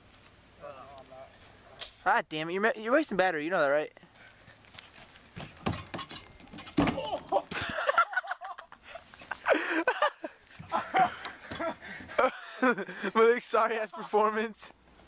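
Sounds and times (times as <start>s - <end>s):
quick footsteps on loose ground: 4.0s - 5.7s
young men laughing: 6.9s - 14.4s.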